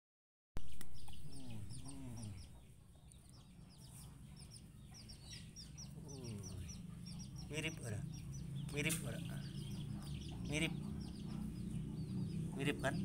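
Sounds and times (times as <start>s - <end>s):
birds chirping: 0.6s - 13.0s
lower bird calls: 0.6s - 13.0s.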